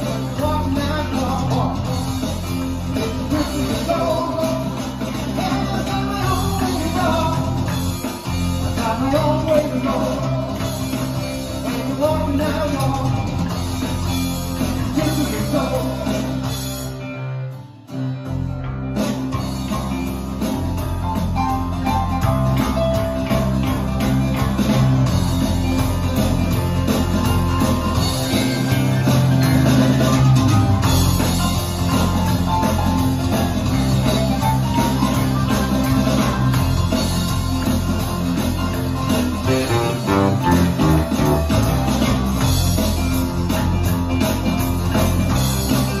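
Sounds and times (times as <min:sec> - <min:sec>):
drum kit: 0:00.0 - 0:46.0
electric bass: 0:00.0 - 0:46.0
keyboards: 0:00.0 - 0:46.0
acoustic guitar strumming: 0:36.4 - 0:42.4.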